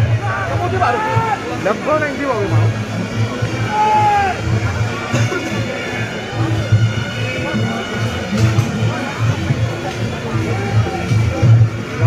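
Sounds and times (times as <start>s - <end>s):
crowd voices: 0.0s - 12.0s
gamelan music: 1.4s - 12.0s.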